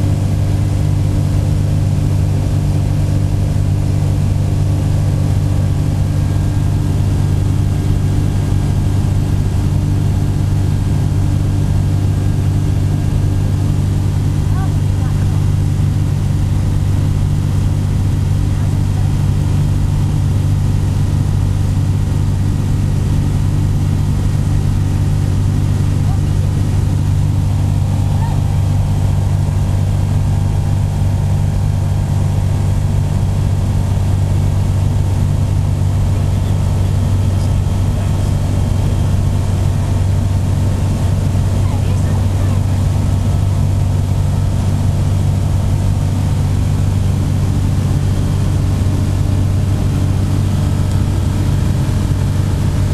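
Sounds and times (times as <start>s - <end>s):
airflow noise over canopy: 0.0s - 52.9s
light aircraft engine drone: 0.0s - 52.9s.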